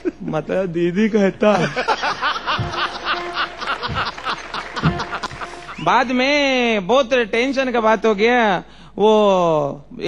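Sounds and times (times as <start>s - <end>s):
audience laughing: 1.4s - 5.9s
held musical tone: 2.1s - 6.0s.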